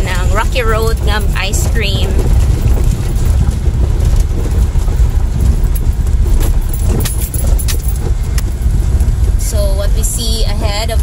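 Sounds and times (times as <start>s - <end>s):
rattles and knocks over stones: 0.0s - 9.4s
tyres rumbling on gravel road: 0.0s - 11.0s.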